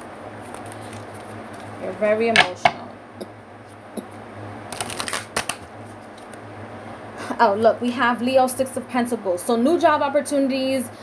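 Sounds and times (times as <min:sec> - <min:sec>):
cards being shuffled: 0:00.4 - 0:01.7, 0:04.7 - 0:06.4.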